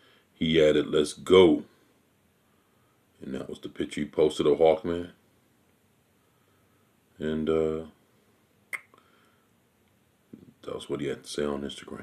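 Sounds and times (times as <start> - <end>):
man's click-like mouth hiccup: 8.7 - 9.0.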